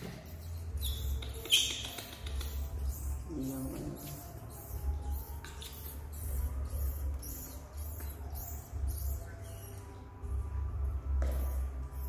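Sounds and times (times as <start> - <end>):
baby monkey squeaking: 0.0 - 10.5, 11.2 - 12.0.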